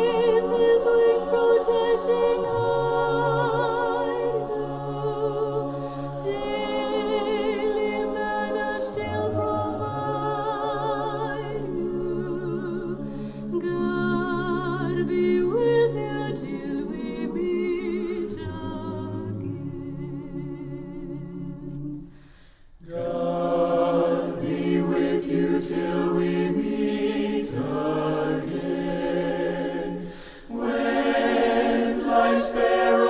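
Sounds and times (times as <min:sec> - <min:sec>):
choir singing: 0:00.0 - 0:22.2, 0:22.8 - 0:33.0.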